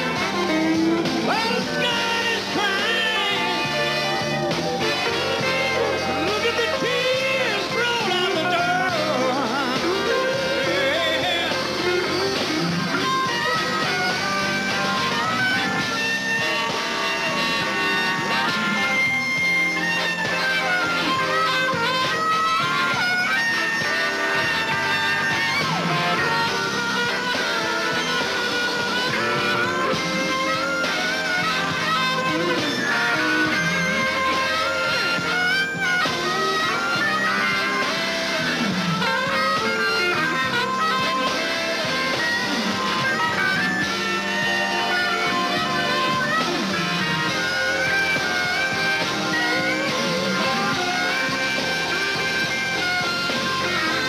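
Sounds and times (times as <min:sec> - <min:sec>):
blues band playing: 0:00.0 - 0:54.0
electric guitar bending strings: 0:00.0 - 0:54.0.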